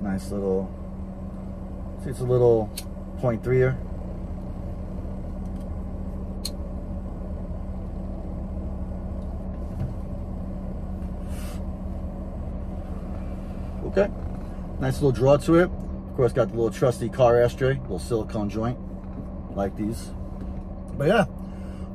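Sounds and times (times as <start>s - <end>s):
car engine idling: 0.0s - 21.9s.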